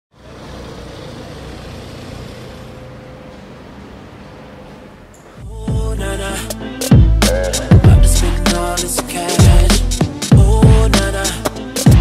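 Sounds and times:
road traffic rumble: 0:00.1 - 0:05.5.

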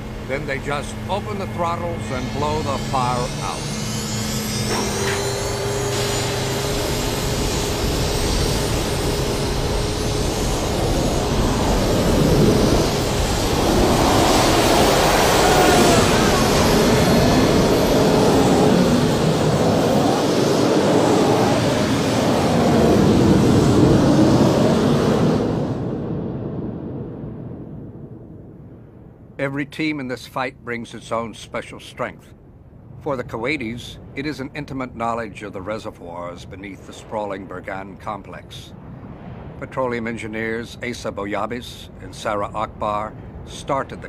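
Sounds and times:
jet engines roaring: 0:00.0 - 0:27.3
faint whine: 0:00.0 - 0:44.0.

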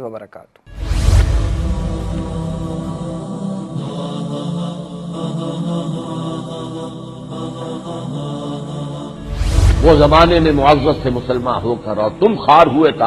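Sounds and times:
drone of humming voices: 0:01.0 - 0:13.0.

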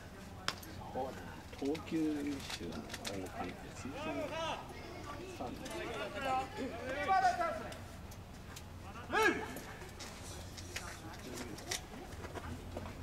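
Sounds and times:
players talking: 0:00.0 - 0:13.0
loud drawn-out shouted call: 0:03.8 - 0:07.8, 0:08.9 - 0:09.7.

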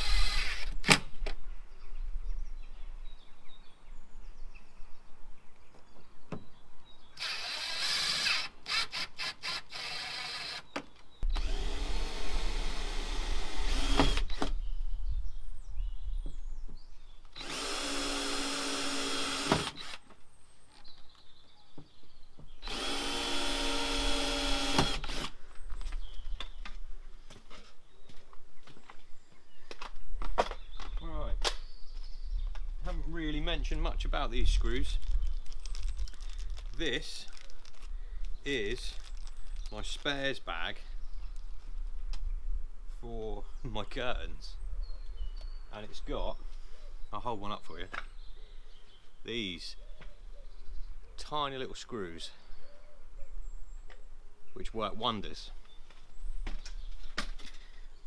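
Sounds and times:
cordless drill running: 0:00.0 - 0:00.7, 0:07.2 - 0:10.6, 0:11.3 - 0:14.5, 0:17.4 - 0:20.0, 0:22.6 - 0:25.4.

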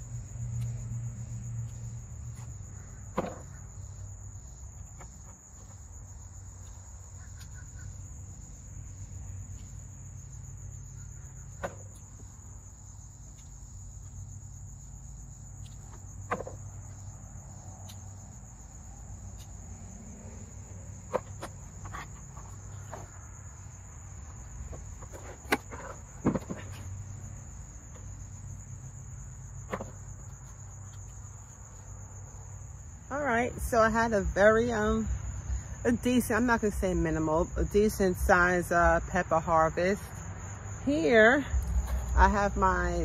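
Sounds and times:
insect chorus trilling: 0:00.0 - 0:43.0.

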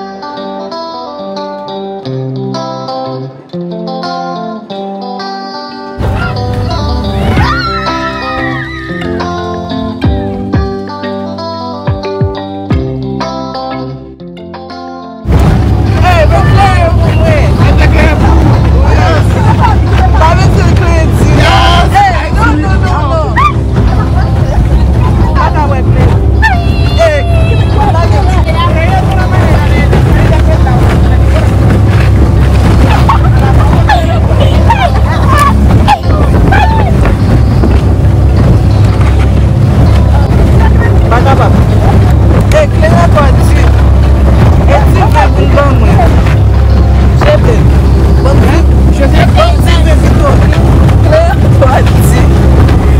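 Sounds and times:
wind buffeting microphone: 0:06.0 - 0:09.3, 0:15.2 - 0:52.9
people yelling and squealing: 0:06.0 - 0:09.4, 0:20.9 - 0:30.7, 0:32.6 - 0:37.8
motorboat engine rumble: 0:06.0 - 0:10.8, 0:15.2 - 0:52.9
people talking and calling out: 0:06.0 - 0:10.9, 0:15.4 - 0:52.9
speedboat running fast: 0:15.3 - 0:52.9.

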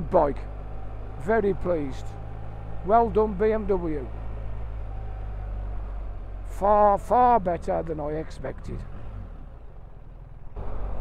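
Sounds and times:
motorcycle engine low drone: 0:00.0 - 0:11.0.

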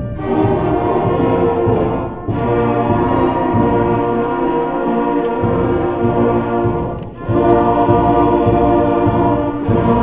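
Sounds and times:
school concert band playing chords: 0:00.0 - 0:10.0.

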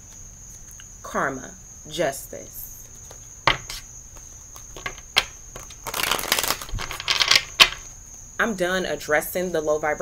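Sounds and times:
cards shuffling flutter: 0:04.5 - 0:07.8
cards clicking and tapping: 0:04.5 - 0:07.9.

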